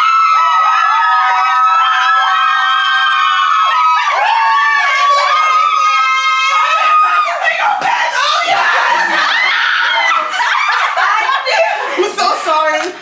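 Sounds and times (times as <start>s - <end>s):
women screaming and cheering: 0.0s - 12.4s.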